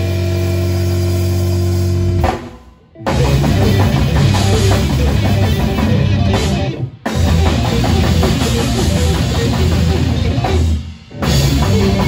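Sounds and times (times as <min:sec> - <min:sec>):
distorted electric guitar chord: 0:03.0 - 0:12.0.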